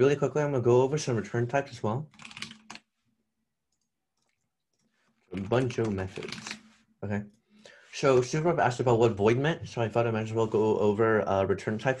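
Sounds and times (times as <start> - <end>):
keyboard typing: 2.1 - 2.9, 4.8 - 6.7.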